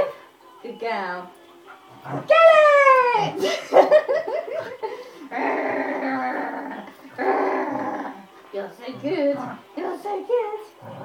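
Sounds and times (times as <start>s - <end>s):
dog play-growling: 1.6s - 2.3s, 4.6s - 10.0s, 10.6s - 11.0s.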